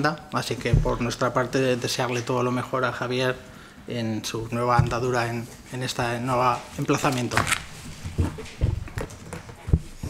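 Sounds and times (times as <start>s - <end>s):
dull thumps near microphone: 0.6s - 1.4s, 4.4s - 5.4s.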